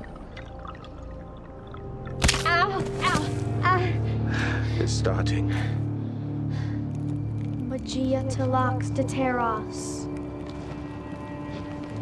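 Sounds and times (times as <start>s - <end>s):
low dramatic music drone: 0.0s - 12.0s.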